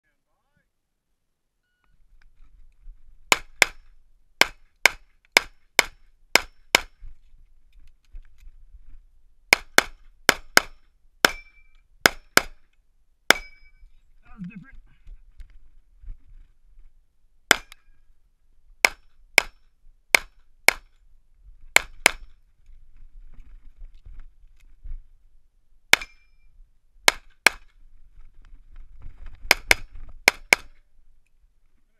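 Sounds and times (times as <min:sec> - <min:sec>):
faint ringing tone: 0:01.6 - 0:02.0.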